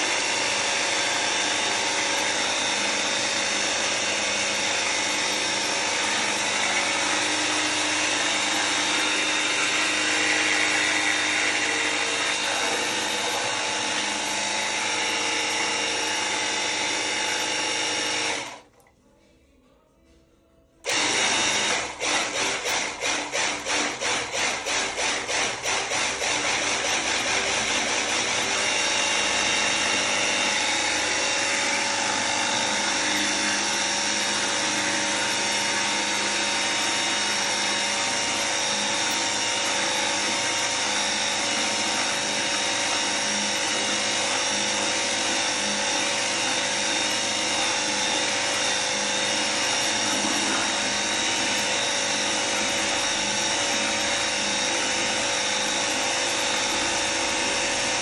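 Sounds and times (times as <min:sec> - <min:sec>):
pressure washer motor whine: 0:00.0 - 0:18.7, 0:20.8 - 0:58.0
water jet spraying into bucket: 0:00.0 - 0:18.7, 0:20.9 - 0:58.0.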